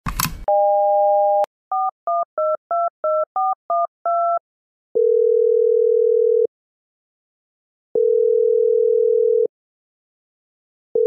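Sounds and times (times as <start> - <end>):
phone click: 0.0 - 0.5
dial tone: 0.5 - 4.4, 5.0 - 6.5, 8.0 - 9.5
phone ringing tone: 5.0 - 6.5, 8.0 - 9.5.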